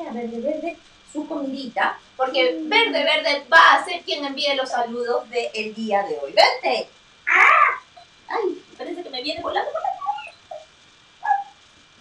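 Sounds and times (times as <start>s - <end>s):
woman making high squeaky calls: 9.8s - 11.6s.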